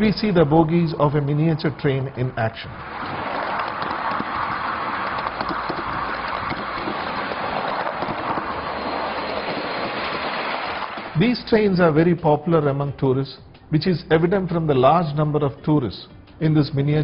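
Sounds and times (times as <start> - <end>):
miniature train wheels on rails: 2.8 - 11.2.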